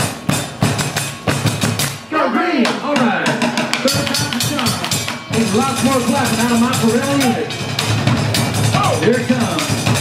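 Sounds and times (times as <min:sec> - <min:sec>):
marching drums: 0:00.0 - 0:10.0
voices calling: 0:00.0 - 0:10.0.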